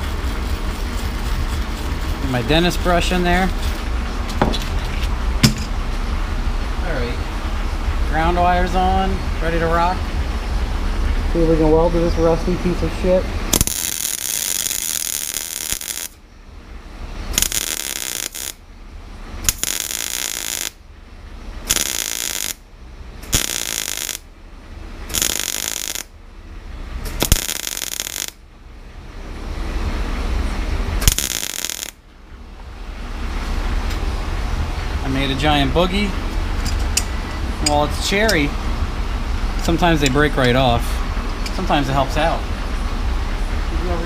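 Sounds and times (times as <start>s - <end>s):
arc welder crackling: 0.0s - 3.2s, 13.5s - 16.2s, 17.3s - 18.6s, 19.4s - 20.8s, 21.6s - 24.3s, 25.0s - 26.2s, 27.0s - 28.5s, 30.9s - 32.1s
low hum: 0.0s - 44.0s.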